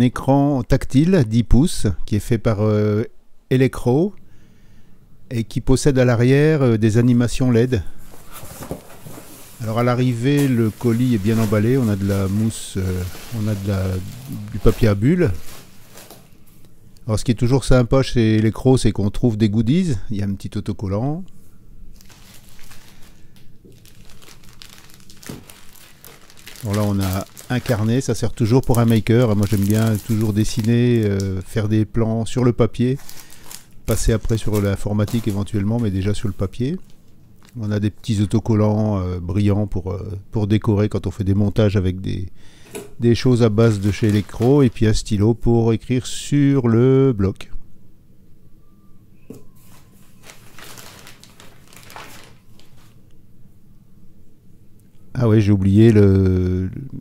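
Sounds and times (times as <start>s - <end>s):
plastic bag crinkling: 8.0s - 16.6s, 21.9s - 31.6s, 32.8s - 37.6s, 43.2s - 45.2s, 49.6s - 53.0s.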